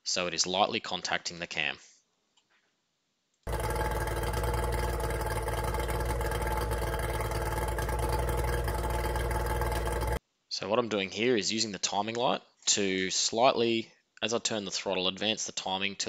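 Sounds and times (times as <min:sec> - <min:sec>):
outboard motor running: 0:03.5 - 0:10.2.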